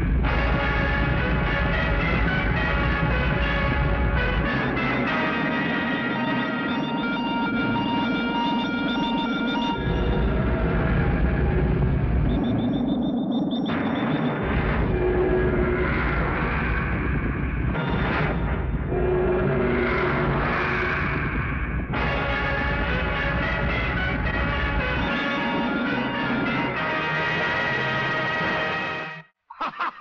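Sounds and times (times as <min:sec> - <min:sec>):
low rumble: 0:00.0 - 0:05.9, 0:06.7 - 0:26.6
sustained synthesizer tones: 0:00.0 - 0:27.6
high electronic beeps: 0:06.3 - 0:10.3, 0:12.2 - 0:14.5.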